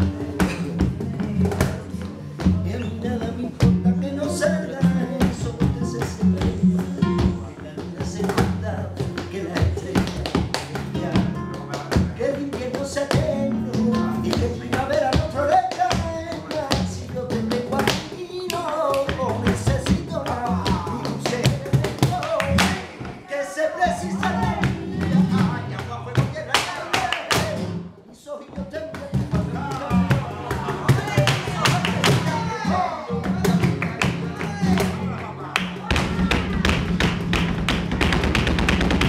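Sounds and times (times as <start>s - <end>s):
man singing: 0.0s - 36.6s
flamenco guitar: 0.0s - 39.0s
rhythmic hand clapping: 5.2s - 23.2s, 24.1s - 27.8s, 28.6s - 32.4s, 33.2s - 39.0s.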